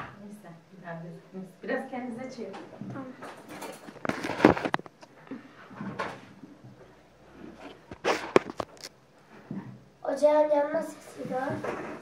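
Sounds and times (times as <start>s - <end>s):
hand rubbing phone microphone: 7.3s - 8.7s.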